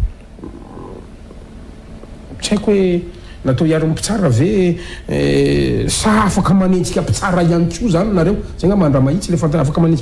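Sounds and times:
low rumbling background noise: 0.0s - 10.0s.

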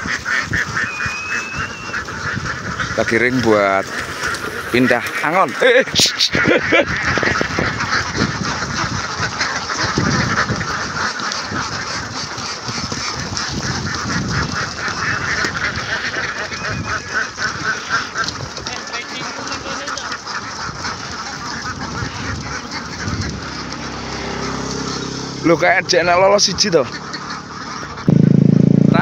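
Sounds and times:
flock of ducks quacking: 0.0s - 29.0s.

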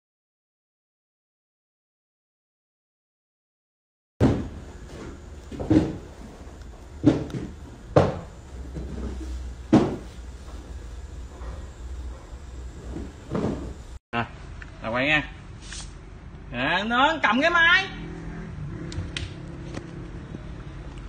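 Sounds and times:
handling knocks and bumps: 4.2s - 6.2s, 12.9s - 13.9s.

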